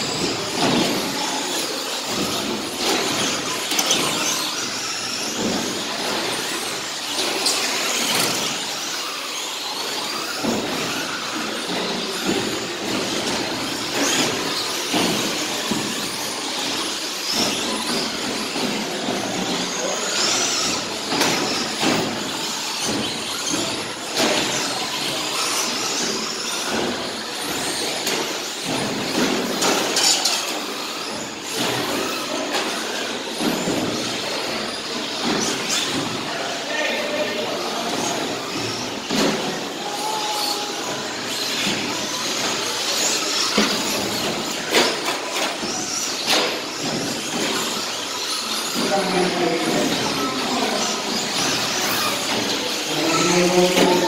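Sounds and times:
electric motors whining: 0.0 - 54.0.

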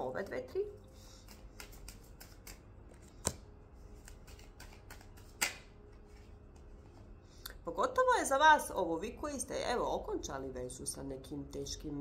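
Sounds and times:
cards rustling in hands: 1.0 - 7.1
sharp card clicks: 1.3 - 2.6, 4.0 - 5.7.

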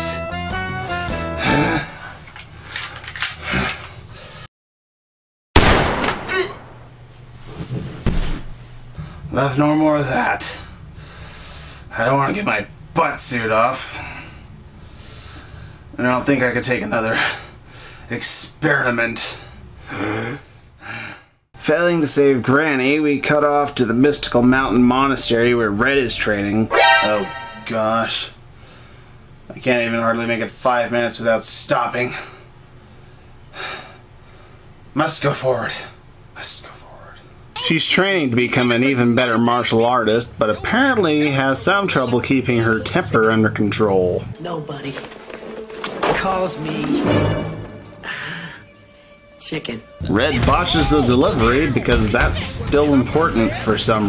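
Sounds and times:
vocal grunt: 1.4 - 1.9
gunshot: 5.6 - 6.9.

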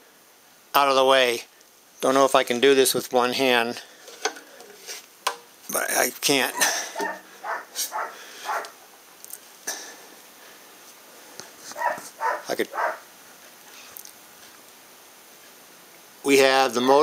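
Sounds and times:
dog making short noises: 6.5 - 8.8, 11.8 - 13.0.

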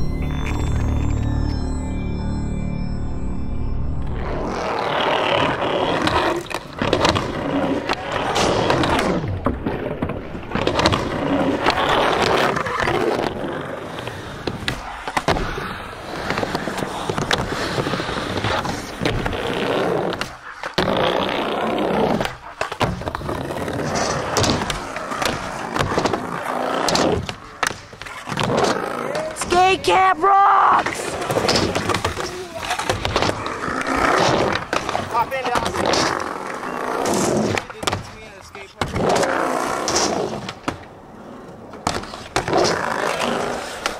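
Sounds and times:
skateboard wheels rolling: 4.0 - 43.9
skateboard clacks and impacts: 5.9 - 29.8, 30.8 - 40.9, 41.6 - 43.9.

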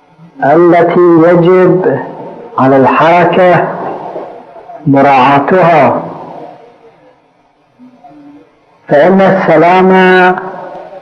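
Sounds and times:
speech echo: 0.2 - 7.1, 7.8 - 11.0.

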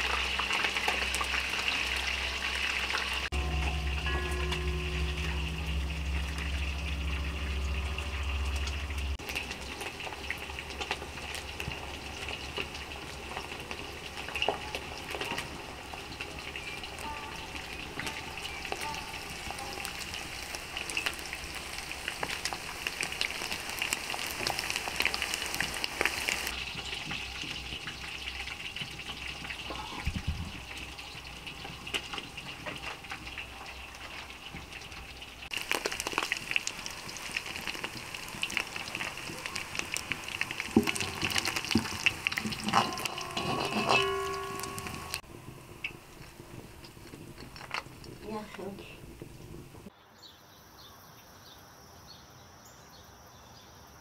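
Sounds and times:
chicken frying in oil: 0.0 - 49.9.

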